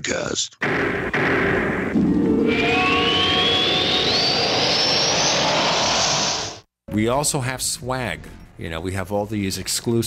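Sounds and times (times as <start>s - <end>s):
whoosh with rising whistle: 2.4s - 6.7s.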